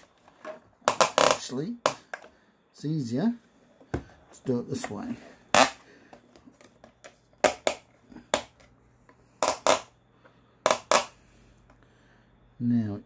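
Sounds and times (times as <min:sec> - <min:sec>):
quiet handling: 0:03.3 - 0:05.4.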